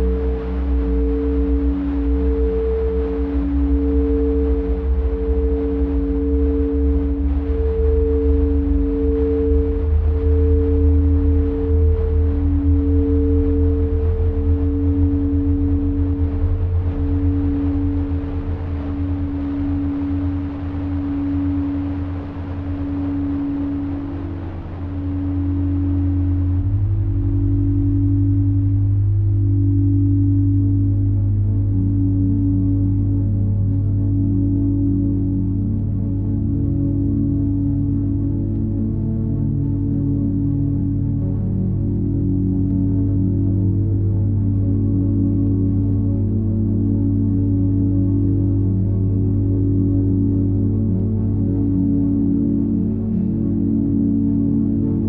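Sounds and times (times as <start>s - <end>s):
crystal singing bowls: 0.0s - 55.0s
low synthesizer drone: 0.0s - 55.0s.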